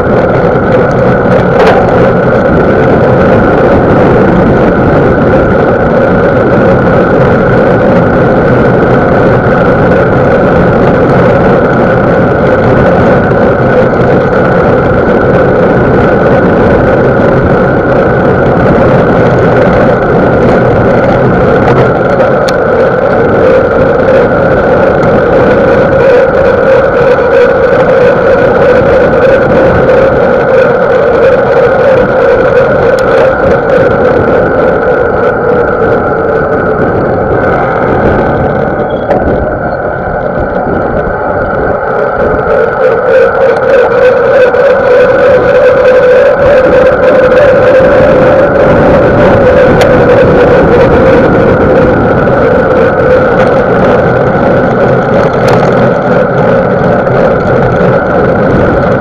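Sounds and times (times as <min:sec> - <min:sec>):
bike rolling noise: 0:00.0 - 0:59.0
wind roar: 0:00.0 - 0:59.0.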